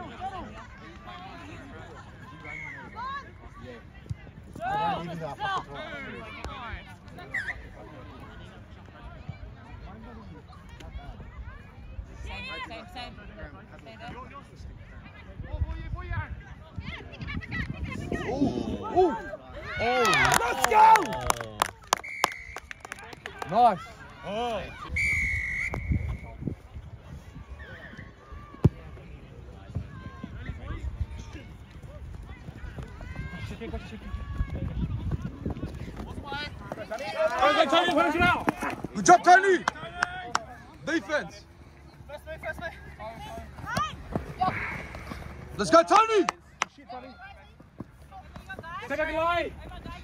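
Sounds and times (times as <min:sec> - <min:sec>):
referee's whistle blast: 0:24.9 - 0:26.4.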